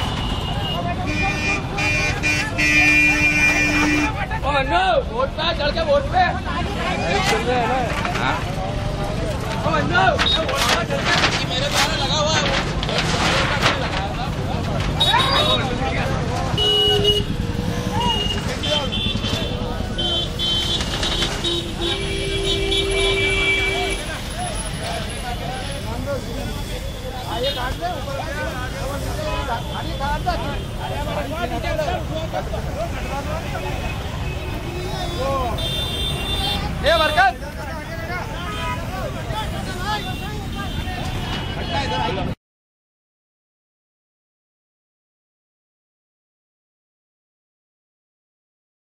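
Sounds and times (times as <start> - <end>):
vehicle horns honking: 0.0 - 4.2, 16.5 - 25.2, 33.2 - 37.3
low rumble of traffic: 0.0 - 42.4
people talking: 0.0 - 42.4
people's voices: 0.0 - 42.4.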